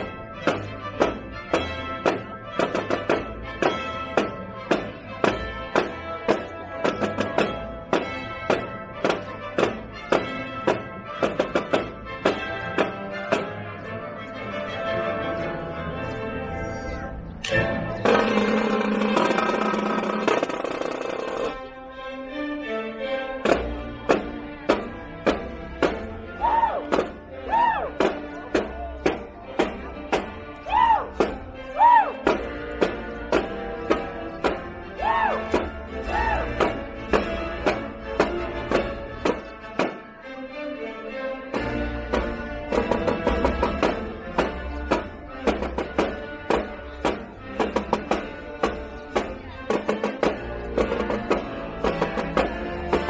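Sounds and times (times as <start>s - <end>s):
marching snare drums: 0.0s - 13.6s, 18.0s - 21.6s, 23.4s - 31.6s, 32.2s - 40.1s, 41.5s - 53.0s
sustained melody: 0.0s - 53.0s
loud drum hit: 18.0s - 21.5s.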